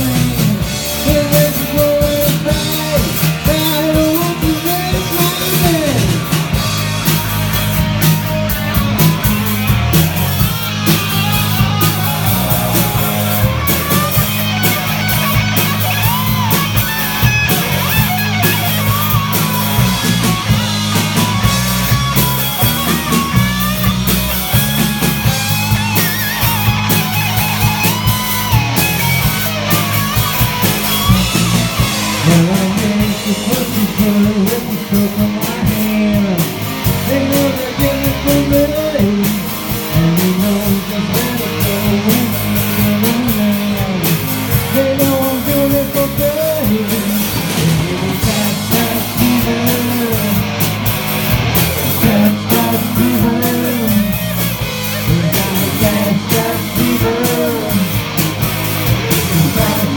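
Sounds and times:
bass line: 0:00.0 - 0:59.9
electric guitar: 0:00.0 - 0:59.9.

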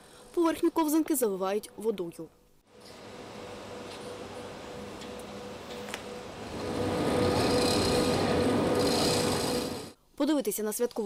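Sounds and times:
machine hum: 0:02.7 - 0:10.0.

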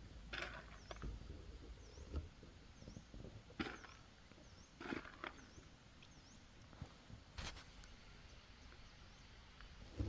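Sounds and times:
soft scuffs in loose soil: 0:06.7 - 0:07.9.

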